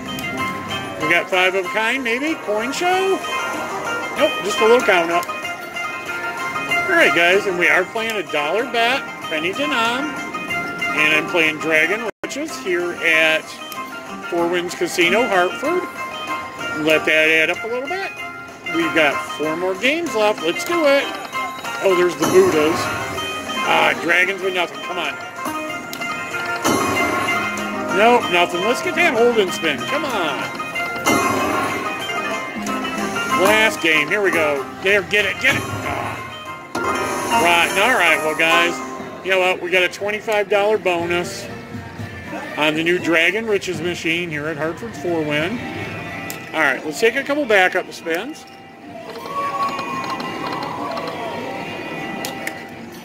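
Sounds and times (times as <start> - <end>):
casino background noise: 0.0 - 41.5, 45.6 - 53.0
slot machine music and reels: 0.0 - 41.7, 42.6 - 53.0
slot machine electronic spin: 18.7 - 39.2, 49.0 - 52.2.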